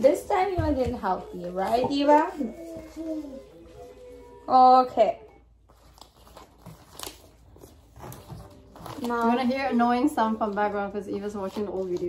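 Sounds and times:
paper banknotes rustling: 5.7s - 12.0s.

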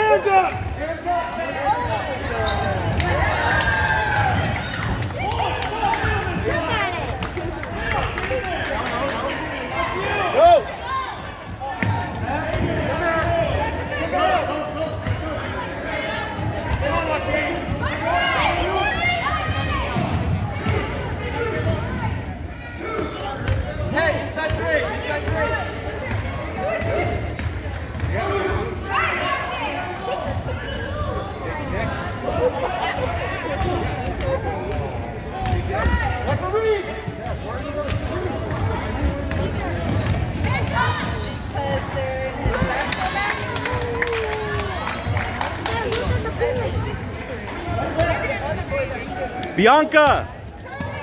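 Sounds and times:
voices and shouts: 0.0s - 51.0s.

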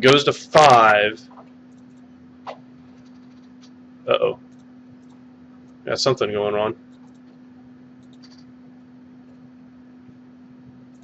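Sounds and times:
steady low hum: 0.0s - 11.0s
computer mouse clicks: 1.4s - 3.8s, 4.5s - 5.8s, 6.9s - 7.4s, 8.0s - 8.6s.

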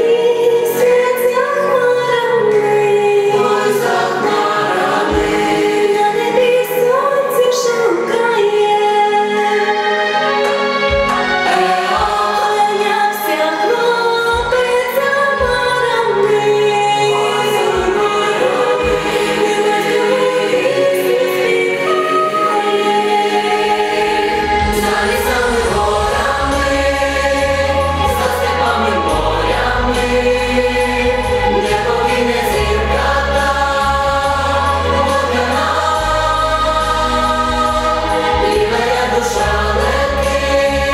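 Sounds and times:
choir singing folk song: 0.0s - 8.2s, 9.7s - 40.9s
instrumental accompaniment: 0.0s - 40.9s
deep bass line: 24.3s - 40.9s.

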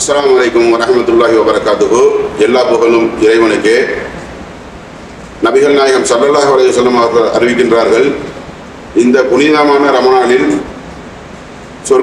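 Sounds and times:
man speaking: 0.0s - 4.2s, 5.4s - 8.3s, 9.0s - 10.7s.

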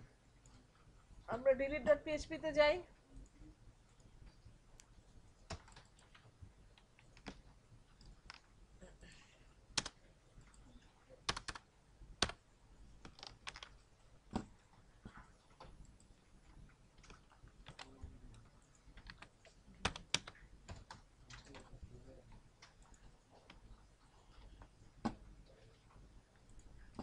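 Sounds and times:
typing on computer keyboard: 4.8s - 8.4s, 9.7s - 12.4s, 13.0s - 14.7s, 17.0s - 21.8s.

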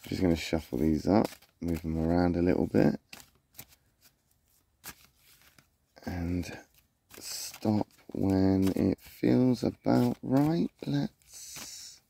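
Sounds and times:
cards being shuffled: 0.0s - 12.0s.

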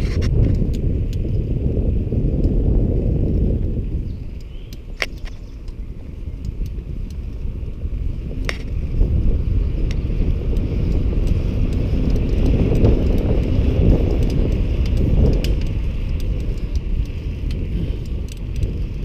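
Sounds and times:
bicycle riding rumble: 0.0s - 19.0s
wind buffeting microphone: 0.0s - 19.0s
sharp clicks and rattles: 4.3s - 19.0s.

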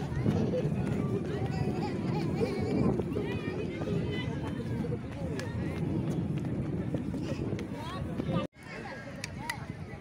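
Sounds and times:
footsteps on brick paving: 0.0s - 8.6s
people talking in background: 0.0s - 10.0s.

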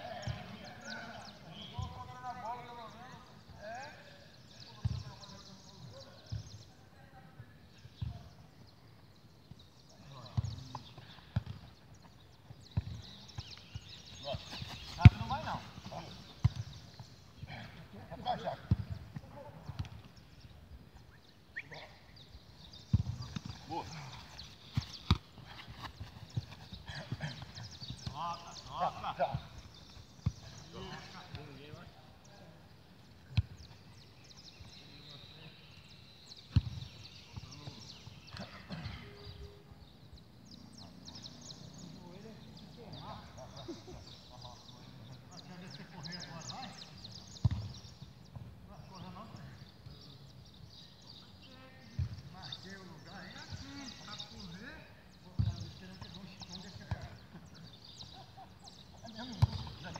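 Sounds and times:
football kicks thudding: 47.4s - 47.8s, 59.4s - 59.7s.

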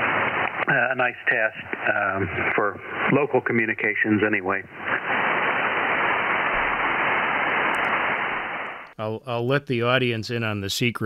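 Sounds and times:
radio receiver hiss: 0.0s - 9.0s.

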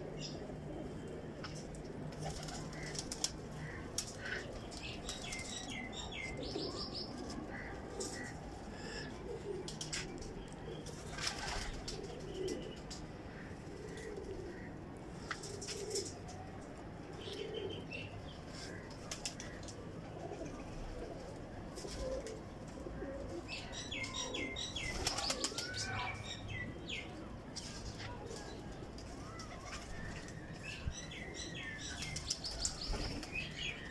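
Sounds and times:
pigeons cooing: 0.0s - 16.3s, 17.0s - 26.0s.

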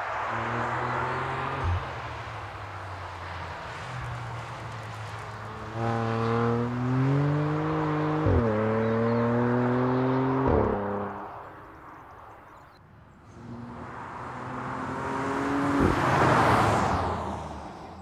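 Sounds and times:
car engine accelerating hard: 5.7s - 11.1s, 13.3s - 17.8s.

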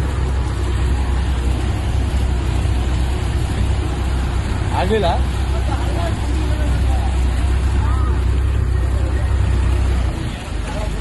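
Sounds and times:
tractor diesel engine running: 0.0s - 11.0s
water churning and rushing: 0.0s - 11.0s.

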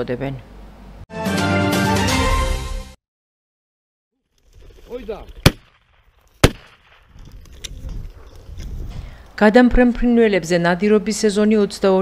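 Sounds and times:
shotgun shot: 5.4s - 7.1s.

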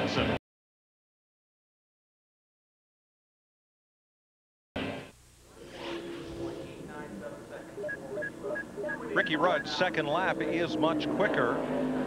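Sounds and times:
steady low drone: 5.3s - 12.0s
faint indistinct voices: 5.6s - 12.0s.

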